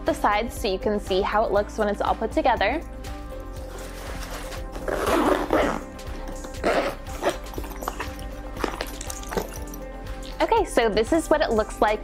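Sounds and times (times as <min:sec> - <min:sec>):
background music: 0:00.0 - 0:12.0
zipper being pulled closed: 0:03.7 - 0:09.6.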